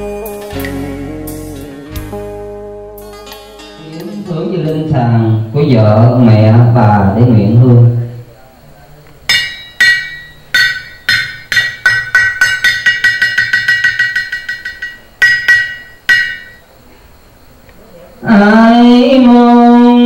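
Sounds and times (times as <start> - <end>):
loud held musical tone: 9.3 - 16.7.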